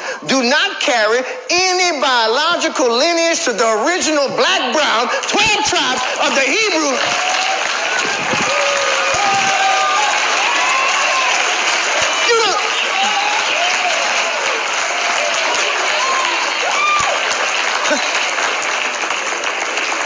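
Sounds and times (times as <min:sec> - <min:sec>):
audience applauding: 0:04.8 - 0:20.0
shouts from the crowd: 0:05.5 - 0:17.3.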